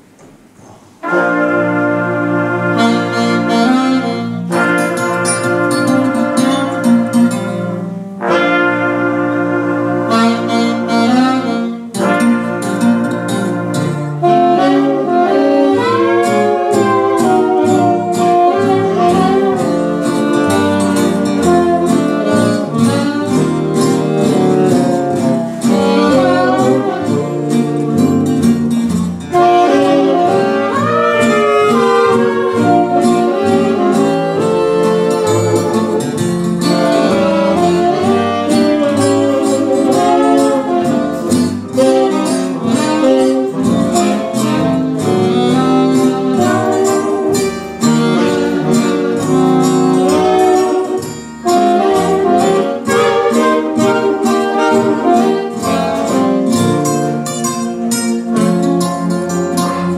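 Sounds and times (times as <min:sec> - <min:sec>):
jazz dance band playing: 0:00.0 - 0:59.9
saxophones: 0:00.6 - 0:59.9.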